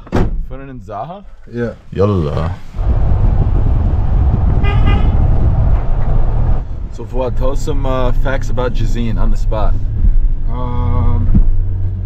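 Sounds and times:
road noise: 1.1 - 12.0
wind rumble on microphone: 2.7 - 12.0.

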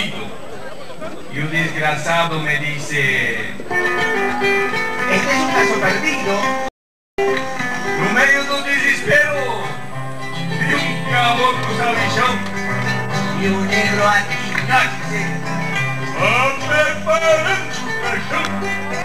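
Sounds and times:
acoustic guitars playing folk song: 1.7 - 19.0.

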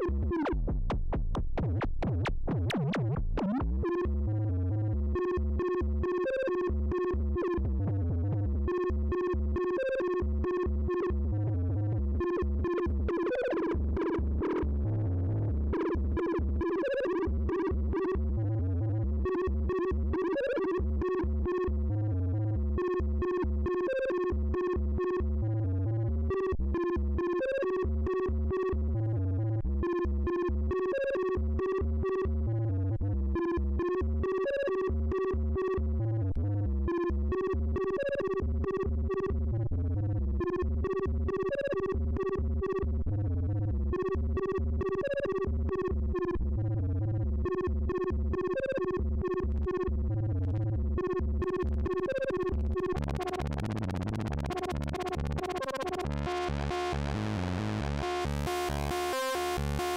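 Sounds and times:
low bass pulse: 38.6 - 58.6.

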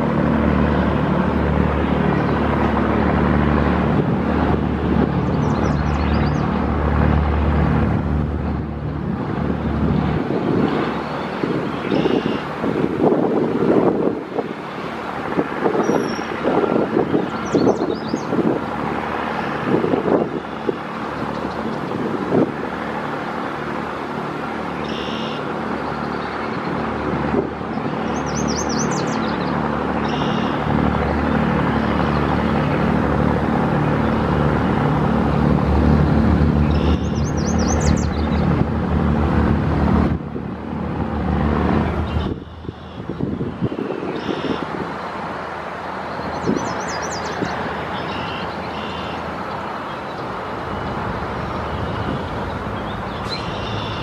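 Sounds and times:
heavy vehicle engine drone: 0.0 - 54.0
road traffic noise: 0.0 - 54.0.

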